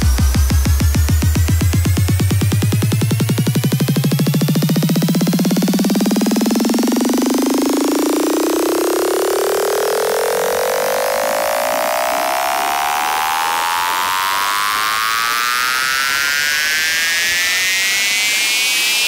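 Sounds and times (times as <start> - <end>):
synthesizer riser sweeping upward: 0.0 - 19.0.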